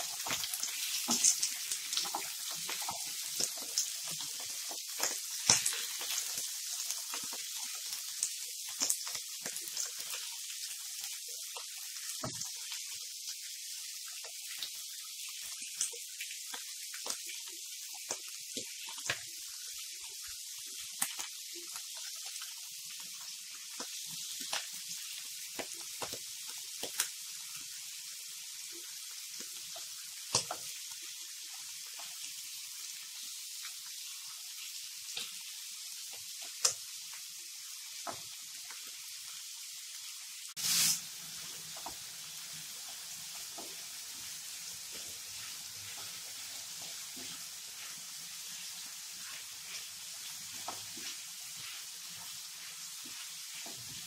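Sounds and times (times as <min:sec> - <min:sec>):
meat and onions sizzling in pan: 0:00.0 - 0:54.0
spatula scraping pan: 0:43.7 - 0:54.0.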